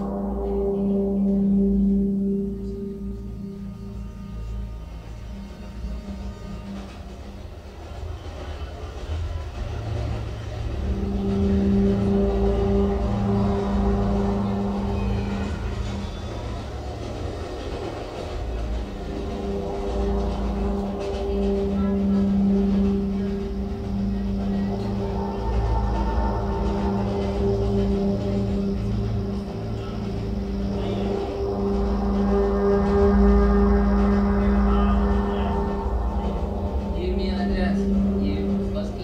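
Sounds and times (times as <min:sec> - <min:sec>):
low rumbling electronic texture: 0:00.0 - 0:08.2, 0:09.2 - 0:39.0
steady low drone: 0:00.0 - 0:39.0.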